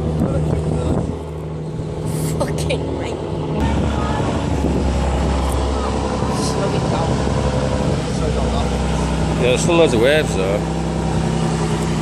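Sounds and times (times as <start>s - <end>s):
diesel boat engine droning: 0.0s - 12.0s
rush of boat wash: 3.6s - 12.0s.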